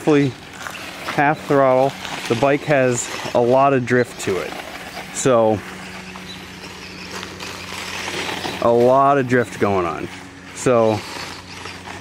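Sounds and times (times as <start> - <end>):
electric rc motorcycle hum: 0.0 - 12.0
tyre on gravel hiss: 0.0 - 12.0.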